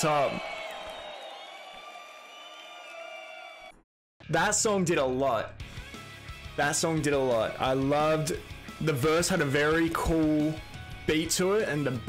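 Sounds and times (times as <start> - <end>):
concert crowd noise: 0.0 - 3.7.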